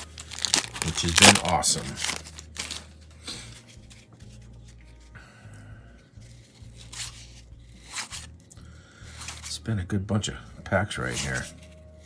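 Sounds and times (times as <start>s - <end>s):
paper cards rustling and sliding: 0.0s - 5.1s, 6.2s - 8.4s, 9.1s - 9.6s, 11.0s - 12.0s.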